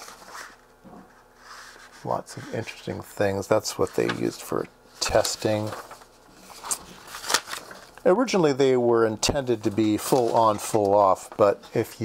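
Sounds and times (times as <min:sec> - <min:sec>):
paper page rustling: 0:00.0 - 0:00.6, 0:03.7 - 0:08.0, 0:09.5 - 0:11.9.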